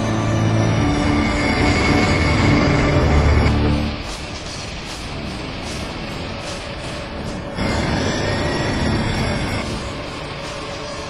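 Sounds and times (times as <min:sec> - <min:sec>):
jet airliner rumble: 0:00.0 - 0:11.0
music: 0:00.0 - 0:11.0.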